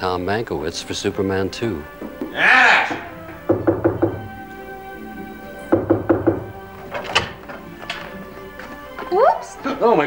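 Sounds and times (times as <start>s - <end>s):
soft sustained music: 0.0s - 10.0s
knocking on a door: 2.0s - 4.4s, 5.7s - 6.6s.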